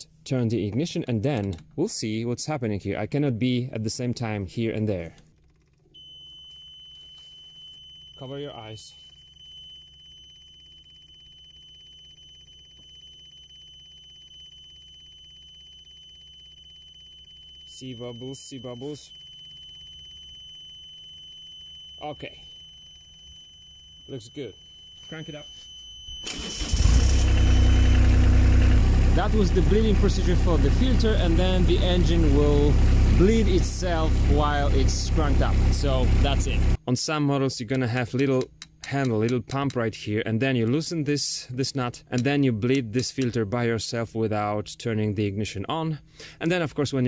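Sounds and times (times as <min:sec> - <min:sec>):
high-pitched warning buzzer: 0:06.0 - 0:36.8
diesel engine starting and idling: 0:26.2 - 0:36.8.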